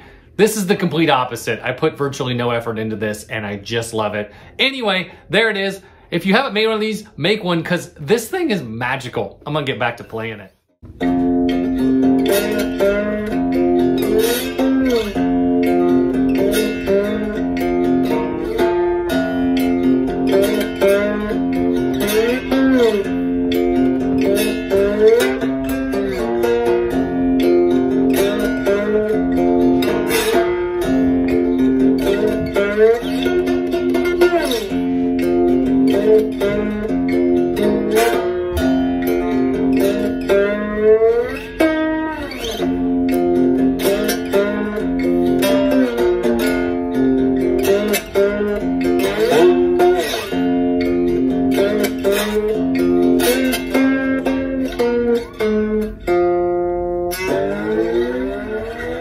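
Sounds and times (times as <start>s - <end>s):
slide banjo fingerpicked notes: 10.8s - 59.0s.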